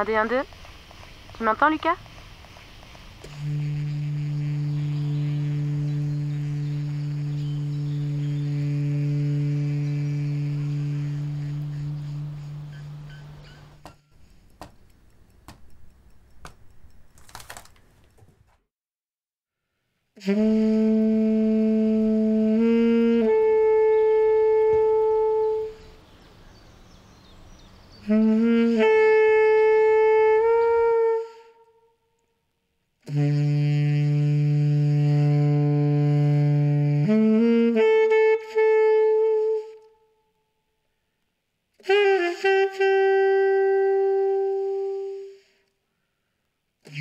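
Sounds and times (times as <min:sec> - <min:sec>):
wind instrument holding a note: 0:03.2 - 0:13.7, 0:20.2 - 0:26.0, 0:28.0 - 0:32.0, 0:33.0 - 0:40.2, 0:41.8 - 0:45.6.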